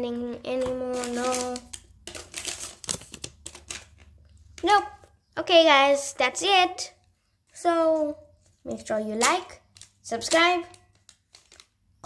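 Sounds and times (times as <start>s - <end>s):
hands rummaging plastic pieces: 0.5s - 4.7s.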